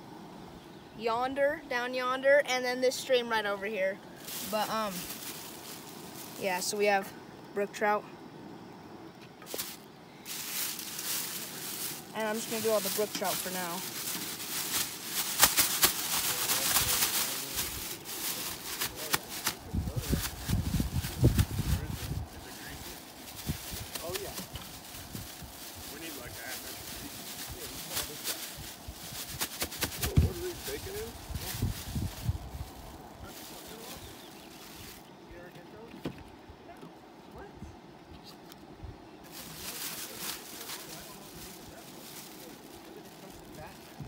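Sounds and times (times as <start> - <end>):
plastic bag rustling and crinkling: 3.0 - 6.9, 9.4 - 35.1, 39.2 - 44.0
fish shaken in flour: 9.5 - 35.1.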